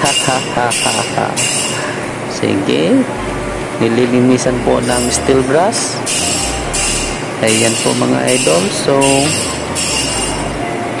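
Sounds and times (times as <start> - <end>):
high-pitched whine: 0.0 - 11.0
person speaking: 2.3 - 9.7.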